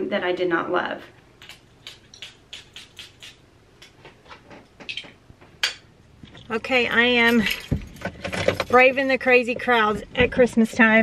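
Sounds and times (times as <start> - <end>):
bottle handling clicks: 4.8 - 6.5.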